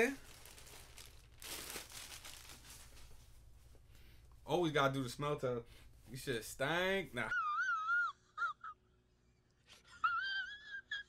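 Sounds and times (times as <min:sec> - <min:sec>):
jeans rustling and crinkling: 0:00.0 - 0:03.9.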